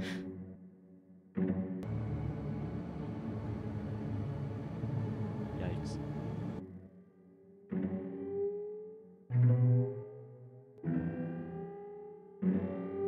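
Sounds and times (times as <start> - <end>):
synth strings with pitch-warping echoes: 1.8 - 6.6.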